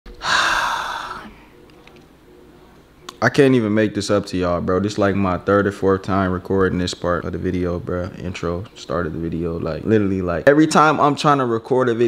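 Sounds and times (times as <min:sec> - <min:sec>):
man sighing: 0:00.2 - 0:01.4.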